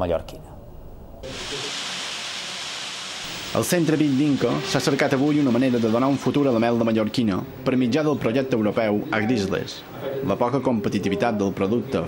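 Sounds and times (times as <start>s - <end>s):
steady hiss: 1.2s - 7.9s.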